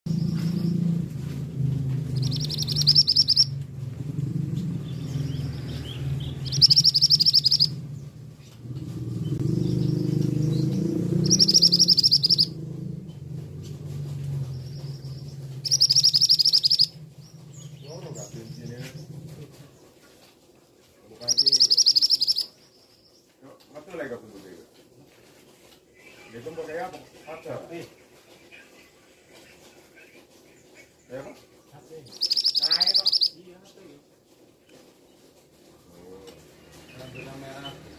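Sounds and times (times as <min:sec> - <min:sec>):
steady low hum: 0:00.1 - 0:19.8
bird calling rapid high notes: 0:02.1 - 0:03.6, 0:06.2 - 0:07.8, 0:11.2 - 0:12.6, 0:15.6 - 0:16.9, 0:21.2 - 0:22.5, 0:32.1 - 0:33.4.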